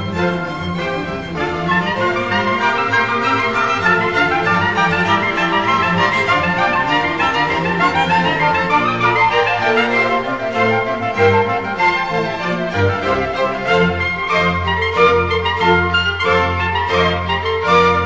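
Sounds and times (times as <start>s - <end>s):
orchestral bowed strings: 0.0s - 18.0s.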